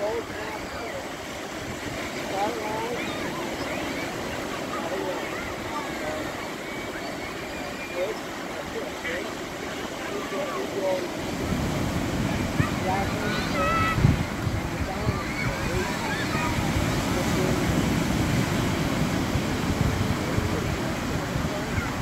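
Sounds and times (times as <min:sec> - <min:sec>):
ocean surf breaking: 0:00.0 - 0:22.0
wind rumble on microphone: 0:11.2 - 0:22.0.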